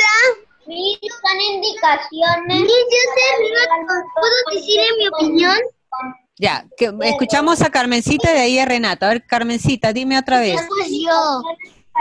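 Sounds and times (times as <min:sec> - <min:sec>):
children talking: 0:00.0 - 0:08.4, 0:10.4 - 0:12.0.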